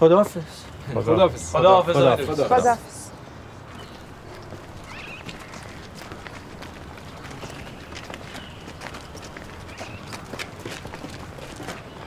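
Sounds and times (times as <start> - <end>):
footsteps on pavement: 3.6 - 12.0.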